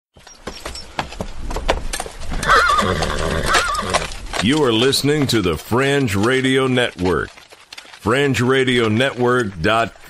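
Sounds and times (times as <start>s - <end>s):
horse whinnying: 2.3s - 4.2s.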